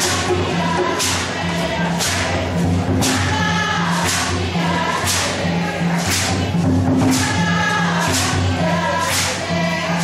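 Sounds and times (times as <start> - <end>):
hand drums: 0.0 - 10.0
voices singing held notes: 0.0 - 10.0.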